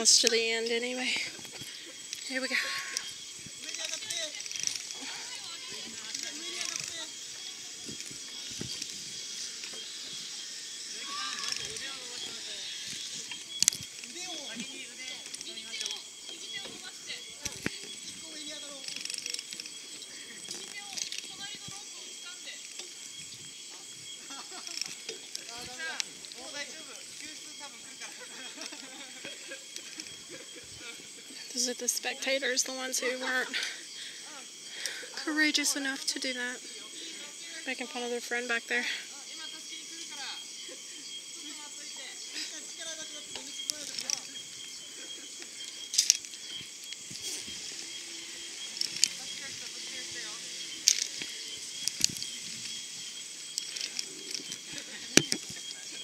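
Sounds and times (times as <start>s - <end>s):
pulley wheels running on steel cable: 0.0s - 23.0s, 23.7s - 34.3s, 41.6s - 56.0s.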